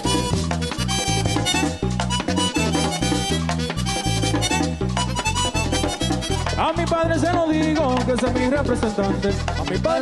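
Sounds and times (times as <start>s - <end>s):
bass and drum beat: 0.0s - 10.0s
button accordion melody: 0.0s - 10.0s.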